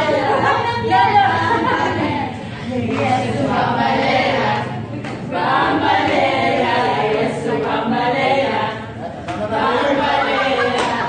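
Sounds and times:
group singing unaccompanied: 0.0s - 11.0s.

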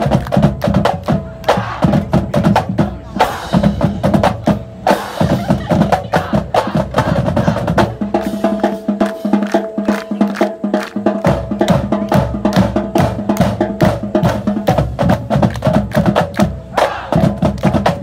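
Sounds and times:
drumline playing quick beat: 0.0s - 18.0s.

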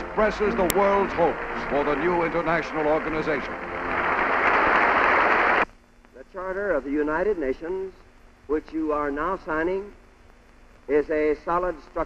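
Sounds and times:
audience applauding: 0.0s - 5.7s.

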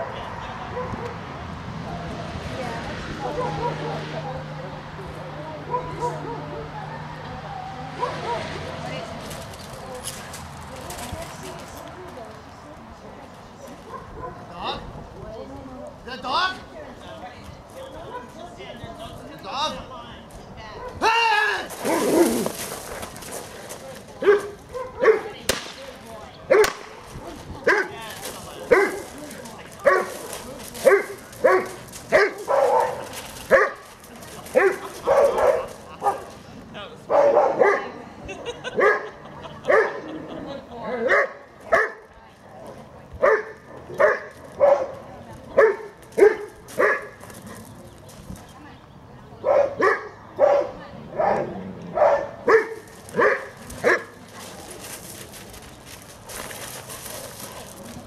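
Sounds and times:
dog barking: 0.7s - 1.2s, 3.2s - 4.5s, 5.7s - 6.7s, 8.0s - 8.6s, 13.9s - 14.4s, 24.2s - 25.4s, 28.7s - 29.1s, 29.8s - 30.2s, 30.8s - 33.8s, 34.6s - 36.3s, 37.1s - 37.9s, 38.8s - 39.1s, 39.7s - 40.0s, 41.1s - 42.1s, 43.2s - 45.0s, 45.6s - 47.2s, 49.4s - 54.1s.

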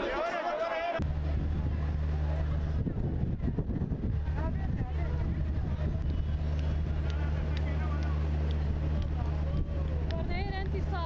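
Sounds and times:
low motor hum: 1.0s - 11.0s.

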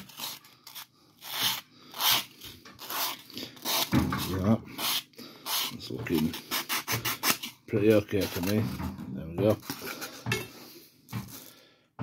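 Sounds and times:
emery board rasping on foam: 0.0s - 8.6s.

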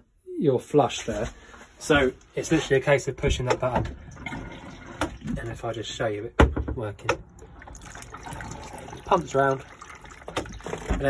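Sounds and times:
electric toilet flush pump: 4.0s - 5.2s, 7.3s - 11.0s
water streaming around bowl: 7.4s - 11.0s.

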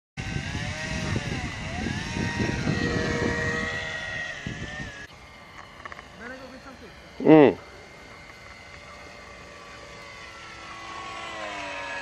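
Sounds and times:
electric motor whine: 0.2s - 12.0s.

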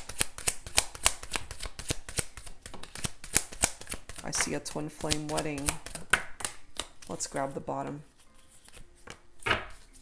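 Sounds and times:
cards being shuffled: 0.0s - 7.2s, 8.1s - 10.0s.

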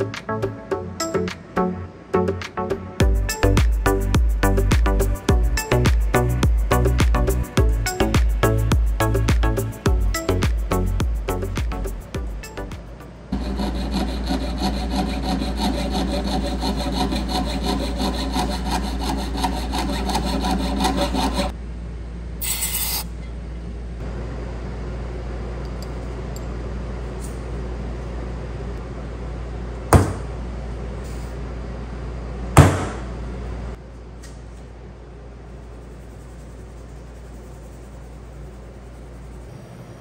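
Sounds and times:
file rasping on metal: 13.3s - 21.5s
hammer striking metal stamp: 30.0s - 30.3s, 32.6s - 33.1s.

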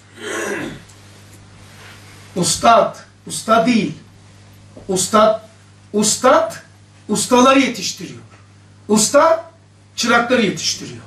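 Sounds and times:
man clearing his throat: 0.1s - 0.9s.

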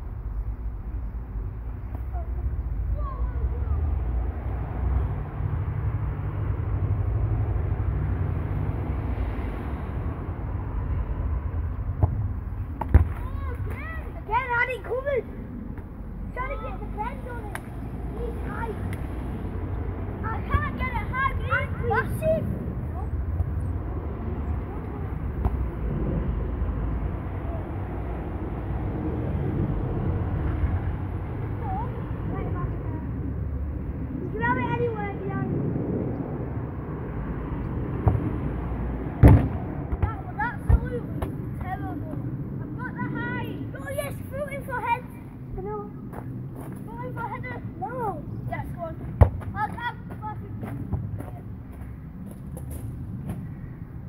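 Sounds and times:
steady low rumble: 0.0s - 54.0s
ball being kicked: 12.8s - 13.7s, 25.4s - 25.7s, 39.2s - 41.4s, 49.2s - 49.5s
boys calling out: 13.2s - 15.4s, 20.2s - 23.2s, 46.9s - 50.7s.

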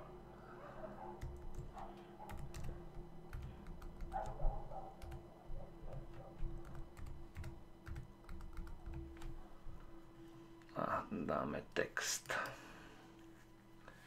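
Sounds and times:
faint steady hum: 0.0s - 14.0s
keyboard keystroke clicks: 2.3s - 4.4s.

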